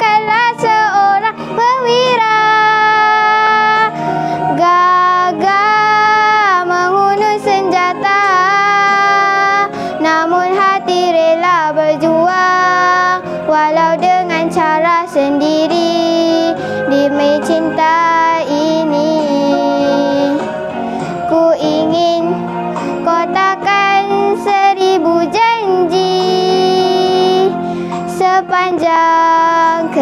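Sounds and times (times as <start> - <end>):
backing track: 0.0 - 30.0
girl singing: 0.0 - 30.0.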